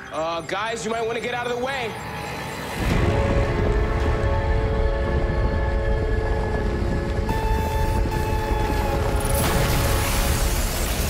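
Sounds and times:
dramatic film score: 0.0 - 11.0
deep rumble: 2.9 - 11.0.

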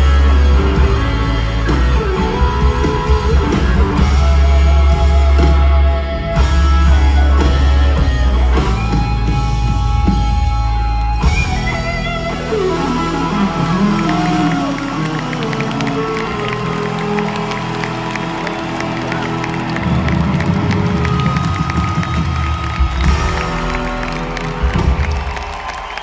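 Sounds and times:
electric guitar notes bending: 0.0 - 22.2
crowd cheering and clapping: 0.0 - 26.0
live rock band: 0.0 - 26.0.

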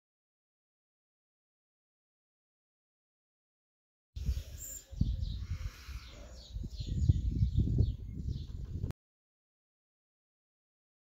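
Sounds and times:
small birds chirping: 4.2 - 8.9
wind rumble on microphone: 4.2 - 9.0.

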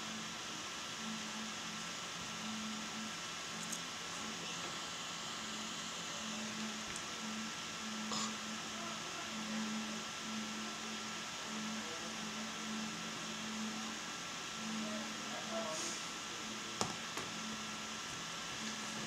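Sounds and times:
faint high whine: 0.0 - 19.0
steady hiss: 0.0 - 19.0.

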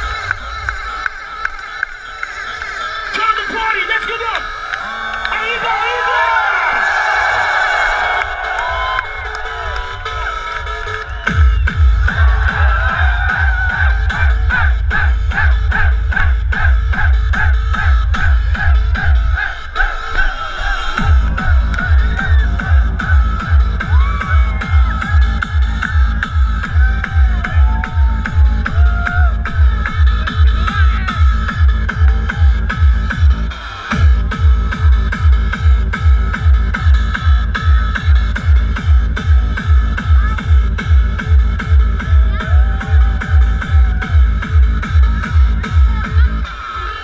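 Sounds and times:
crowd shouting and cheering: 0.0 - 47.0
dance music over sound system: 0.0 - 47.0
heavy kick drum: 11.3 - 19.2, 21.0 - 46.4.

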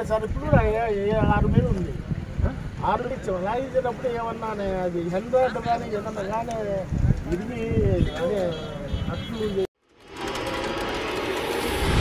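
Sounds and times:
news ident sting whooshing: 11.2 - 12.0.

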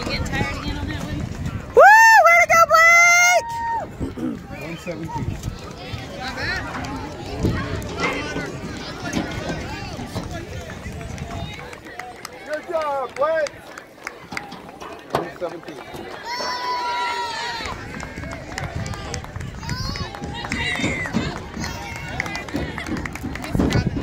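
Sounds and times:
murmur of spectators' voices: 0.0 - 24.0
high-pitched cheering yell: 1.8 - 3.9, 16.2 - 17.7.

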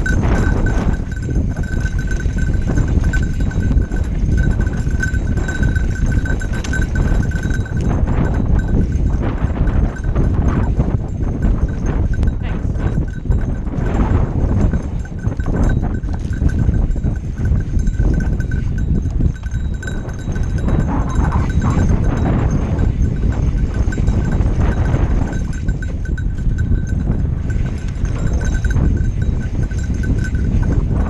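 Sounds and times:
bike rattling: 0.0 - 31.0
wind rumble on microphone: 0.0 - 31.0.

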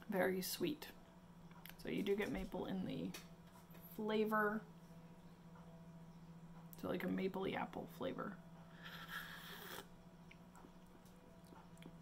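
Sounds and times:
person slurping tea: 8.8 - 9.9.

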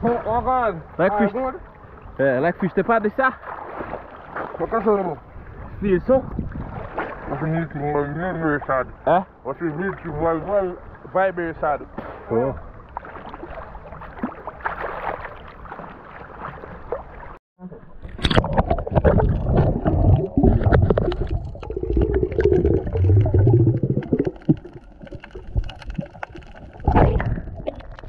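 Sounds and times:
small waves lapping: 0.0 - 17.4
low underwater rumble: 15.4 - 28.0
muffled underwater bubbling: 17.6 - 28.0.

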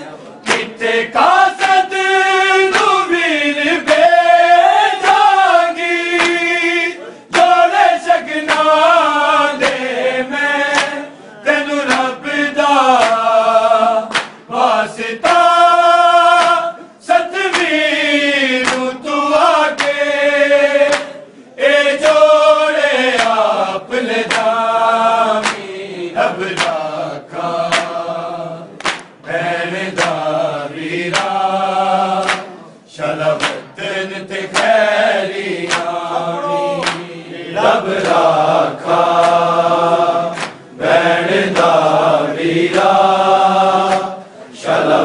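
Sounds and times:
men chanting a lament: 0.0 - 45.0
rhythmic chest slaps: 0.0 - 45.0.

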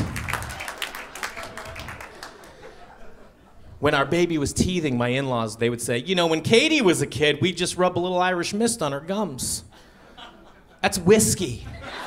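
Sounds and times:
audience applauding: 0.0 - 2.8.

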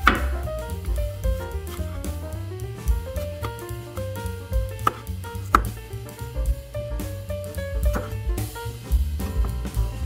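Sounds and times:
knife striking cutting board: 0.0 - 0.5, 4.8 - 5.8, 7.8 - 8.2.

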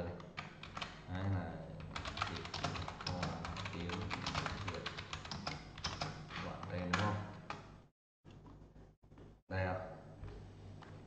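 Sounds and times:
fast typing on keyboard: 0.2 - 1.0, 1.8 - 7.6.

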